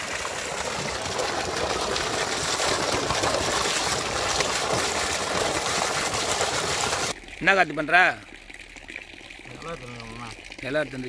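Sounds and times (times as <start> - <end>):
water pouring and splashing: 0.0 - 11.0.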